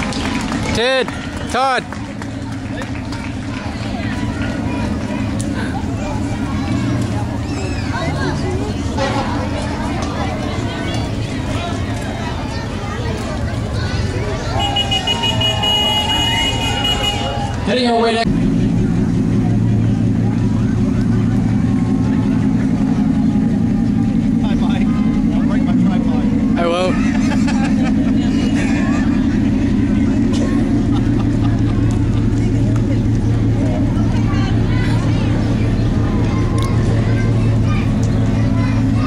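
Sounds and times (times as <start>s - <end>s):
crowd voices: 0.0s - 39.0s
truck engine droning: 0.0s - 39.0s.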